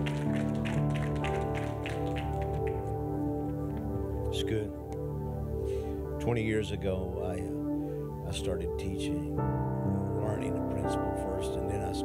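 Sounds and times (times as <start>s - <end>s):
sustained keyboard chords: 0.0s - 12.0s.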